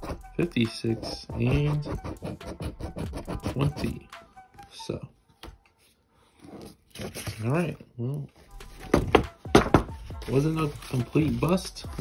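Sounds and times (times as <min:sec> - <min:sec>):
faint paper rustle: 0:10.2 - 0:12.0.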